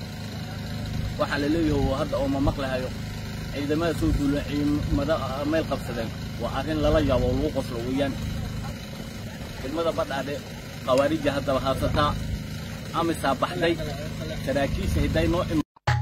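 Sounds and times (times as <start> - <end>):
man talking: 1.1 - 8.3, 9.5 - 12.3, 12.9 - 15.6.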